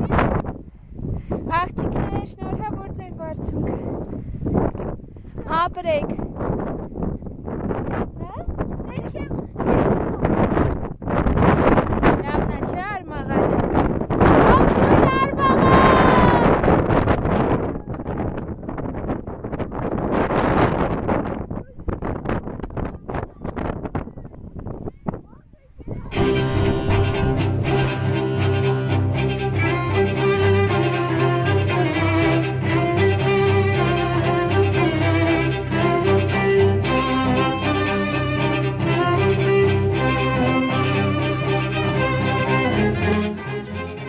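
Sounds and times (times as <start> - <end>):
wind buffeting microphone: 0.0 - 44.0
people talking: 1.5 - 3.9, 5.4 - 6.2, 8.2 - 10.2, 12.2 - 13.5, 14.5 - 16.6, 23.0 - 27.1
bowed strings music: 26.1 - 44.0.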